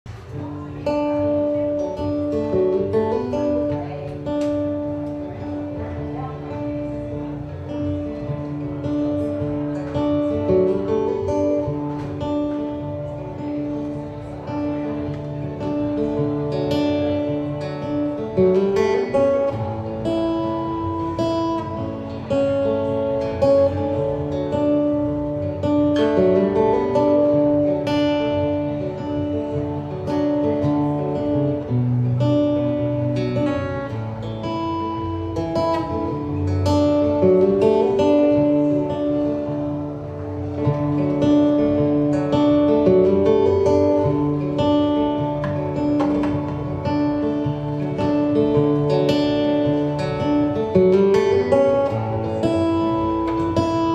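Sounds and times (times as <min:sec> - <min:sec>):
acoustic guitar strumming: 0:00.1 - 0:53.9.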